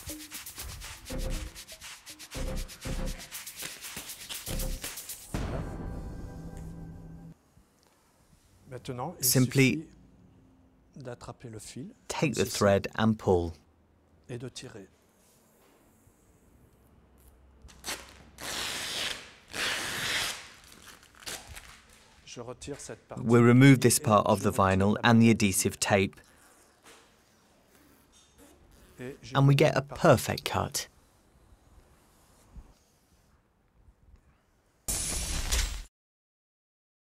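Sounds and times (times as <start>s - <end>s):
film tearing zip: 17.7s - 22.1s, 26.2s - 29.1s.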